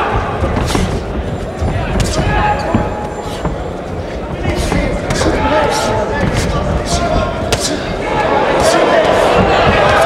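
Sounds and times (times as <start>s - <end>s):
arena crowd noise: 0.0s - 10.0s
voices: 0.0s - 10.0s.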